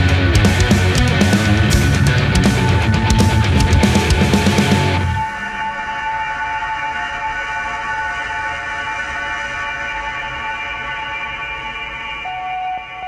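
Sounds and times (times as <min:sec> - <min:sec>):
distorted rock chord ringing out: 0:00.0 - 0:08.0
steady tone: 0:00.9 - 0:13.0
high steady tone: 0:12.2 - 0:13.0.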